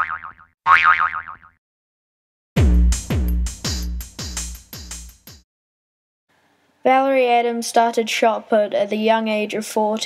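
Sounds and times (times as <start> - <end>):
cartoon boing sound effect: 0.0 - 1.6.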